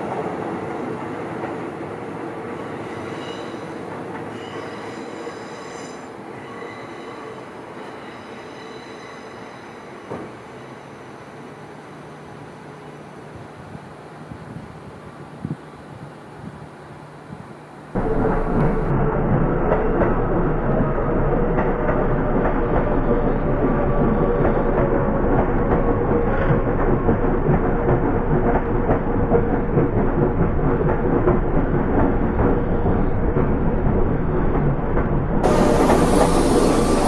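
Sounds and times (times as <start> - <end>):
steady train tone: 0.0 - 14.2, 14.8 - 37.0
train wheels rolling on rail: 0.0 - 37.0.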